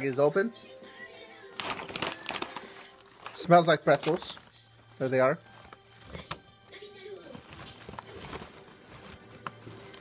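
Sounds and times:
faint background music: 0.0s - 10.0s
plastic snack bag crinkling: 1.5s - 10.0s.

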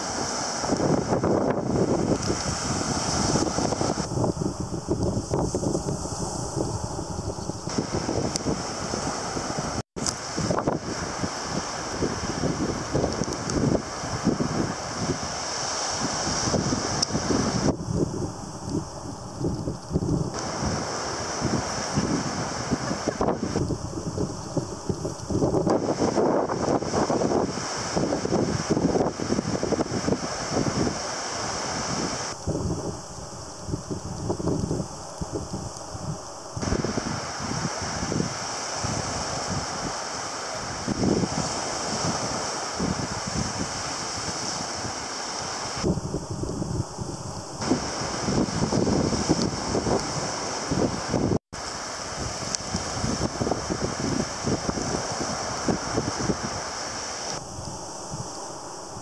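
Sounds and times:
surf breaking on beach: 0.0s - 59.0s
wind buffeting microphone: 0.0s - 59.0s.

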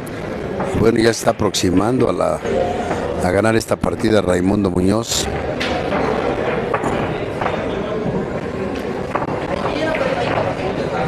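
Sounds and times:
murmur of people talking: 0.0s - 11.0s.

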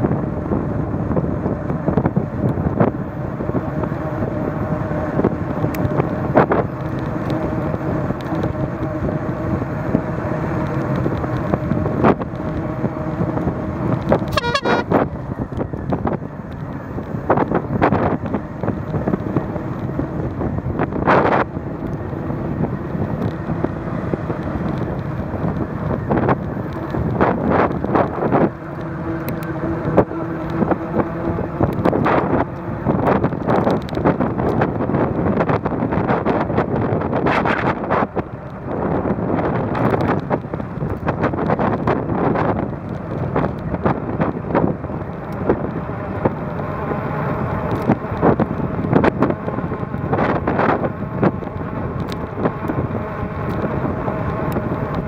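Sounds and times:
bicycle tyre rumble on asphalt: 0.0s - 55.0s
wind buffeting microphone: 0.0s - 55.0s.

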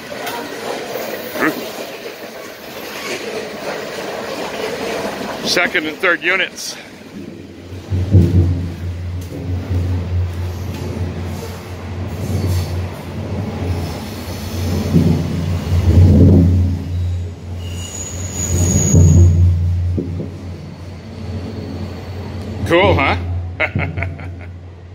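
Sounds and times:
train rumbling overhead: 0.0s - 24.9s
high squeal: 16.8s - 19.8s, 20.4s - 23.1s.

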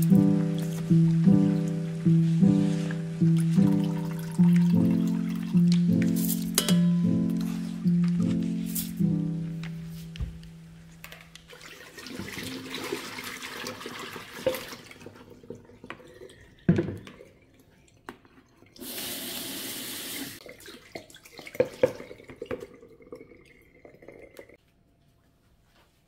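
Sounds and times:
dishes clinking in sink: 3.4s - 9.0s, 15.9s - 17.4s.

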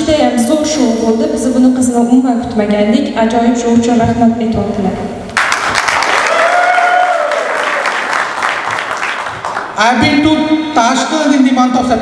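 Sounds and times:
audience clapping: 5.4s - 10.0s.

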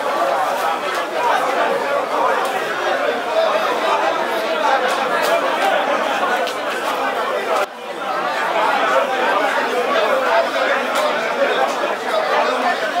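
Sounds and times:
chatter of many people: 0.0s - 13.0s.

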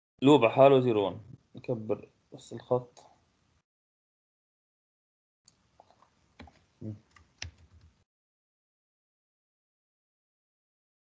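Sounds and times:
keyboard and mouse clicks: 5.5s - 8.0s.

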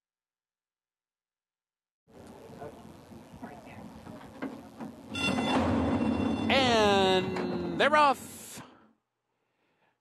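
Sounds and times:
gates opening with a clatter: 4.0s - 7.9s
starting gate bell ringing: 5.1s - 8.2s.

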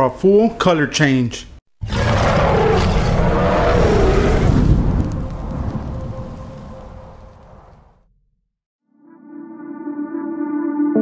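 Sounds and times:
gorilla-style roar: 1.8s - 4.9s
deep thunder-like rumble: 1.9s - 8.0s.

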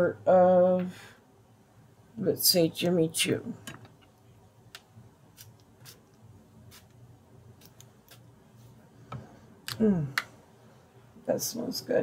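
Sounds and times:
perfume spray hissing: 6.7s - 6.9s.

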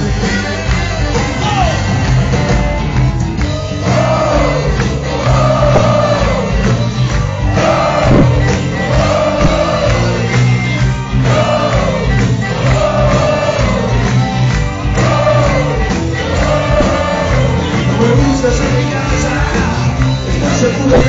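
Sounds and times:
blues-rock band playing: 0.0s - 21.0s
voices singing: 3.8s - 21.0s.

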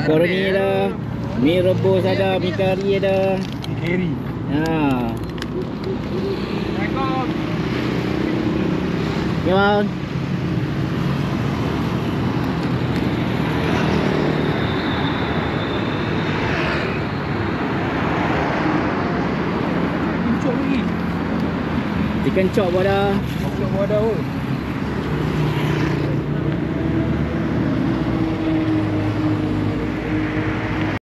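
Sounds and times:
road traffic passing: 0.0s - 31.0s.

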